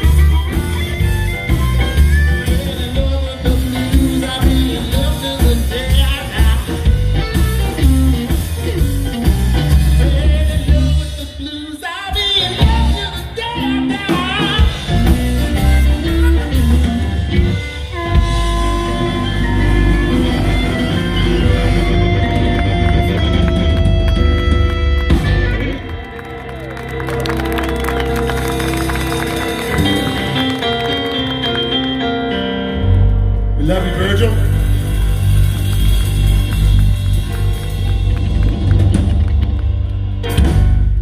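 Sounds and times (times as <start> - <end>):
drum kit: 0.0 - 32.0, 33.0 - 41.0
bass guitar: 0.0 - 41.0
electric guitars: 0.0 - 41.0.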